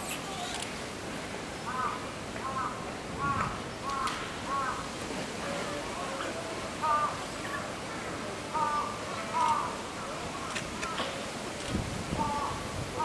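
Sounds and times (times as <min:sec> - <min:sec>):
murmur of voices: 0:04.4 - 0:13.0.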